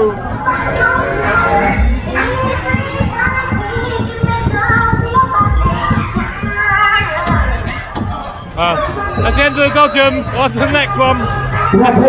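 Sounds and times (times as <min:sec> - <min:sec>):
children shouting and chattering: 0:00.0 - 0:12.0
fairground music with singing: 0:00.0 - 0:12.0.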